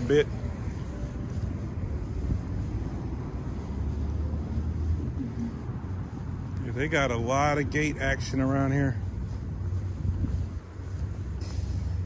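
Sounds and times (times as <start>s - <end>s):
distant traffic rumble: 0.0s - 12.0s
faint outdoor background noise: 0.0s - 12.0s.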